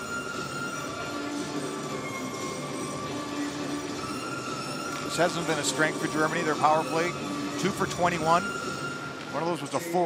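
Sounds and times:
music from arena speakers: 0.0 - 10.0.

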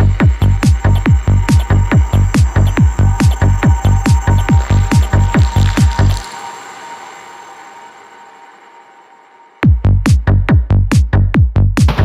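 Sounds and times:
hissing synthesizer noise wash: 0.0 - 10.8.

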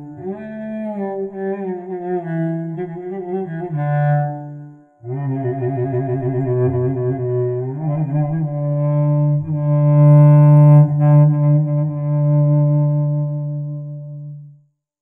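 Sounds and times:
bowed string instrument solo: 0.0 - 14.5.

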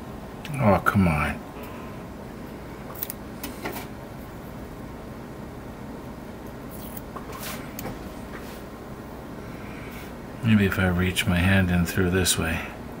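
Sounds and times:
steady background hum: 0.0 - 13.0.

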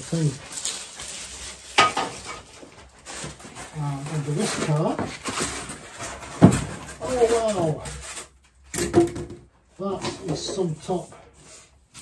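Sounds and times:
plastic wrapping rustling: 0.0 - 12.0.

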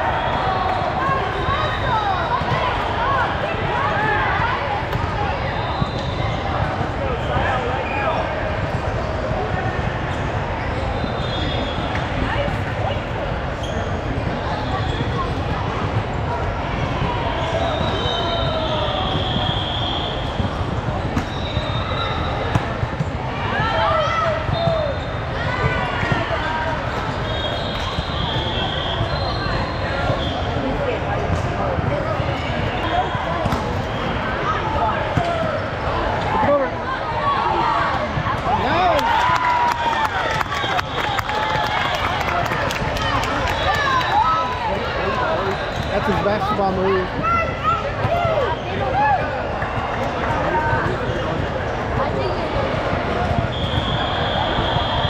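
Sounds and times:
volleyballs hit and bouncing: 16.9 - 29.2, 29.9 - 36.6.

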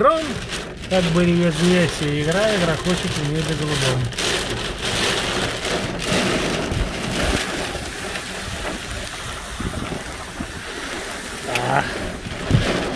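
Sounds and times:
rain on car body: 0.0 - 12.9
tyres on wet road: 0.0 - 12.9
wind: 0.0 - 12.9.

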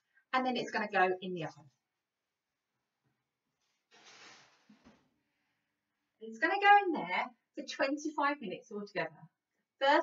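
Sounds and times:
soft rustle: 3.6 - 5.1.

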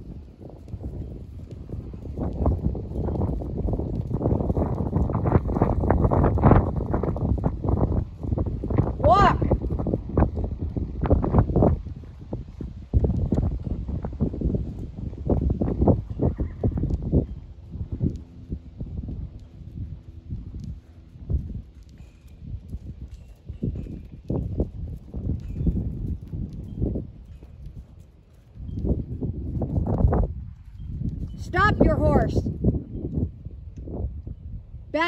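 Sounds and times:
horse hoofbeats on sand: 0.0 - 33.3.

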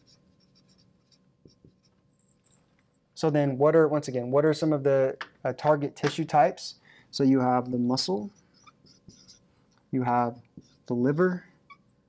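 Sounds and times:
marker squeaking on whiteboard: 0.0 - 2.6, 8.2 - 12.0.

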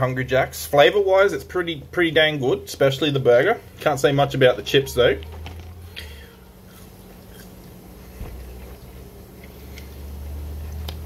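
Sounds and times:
steady low hum: 0.0 - 11.0
man chewing: 5.3 - 11.0.

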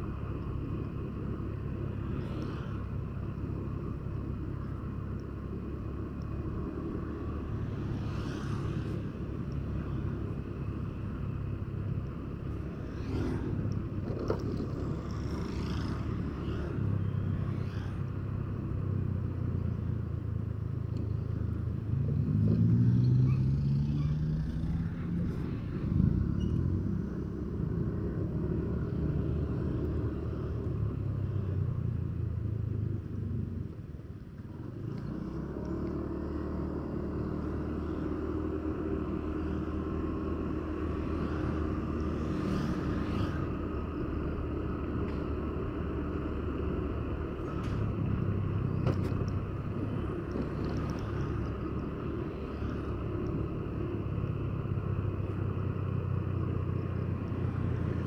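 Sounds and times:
road noise: 0.0 - 58.0.

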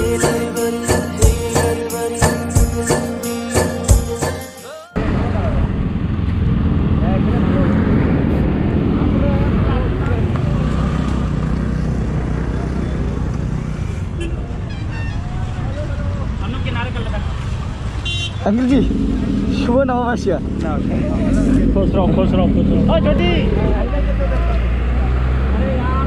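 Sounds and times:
motorbike and car engines rumbling: 5.0 - 26.0
crowd voices: 20.3 - 26.0.

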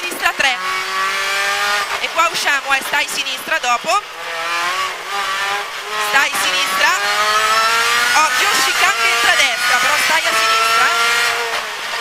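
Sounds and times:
car engine pulling hard: 0.0 - 12.0.

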